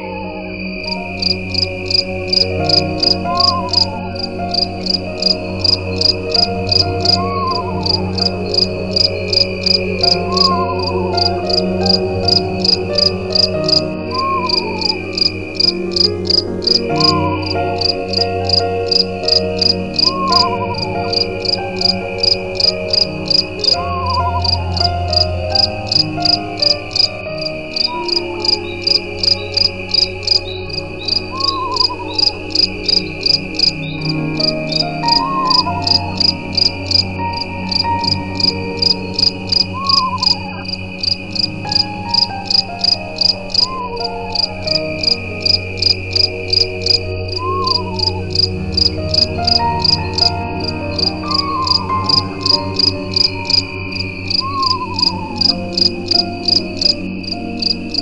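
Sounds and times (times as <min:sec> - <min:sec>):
crickets chirping: 0:00.0 - 0:58.0
high insect trill: 0:00.0 - 0:58.0
low sustained drone: 0:00.0 - 0:58.0.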